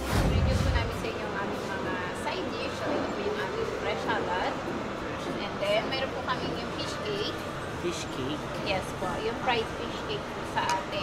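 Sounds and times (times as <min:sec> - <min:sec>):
background room noise: 0:00.0 - 0:11.0
woman talking: 0:00.2 - 0:07.4, 0:08.6 - 0:11.0.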